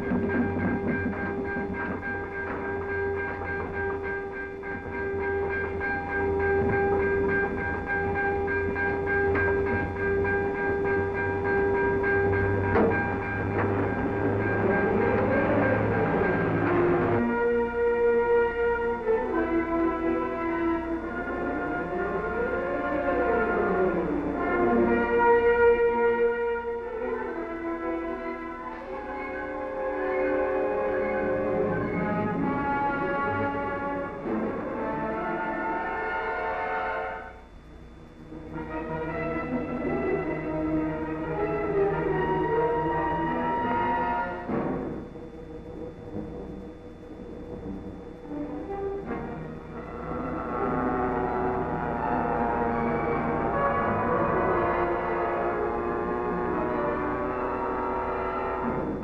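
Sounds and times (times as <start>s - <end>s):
orchestral film score: 0.0s - 59.0s.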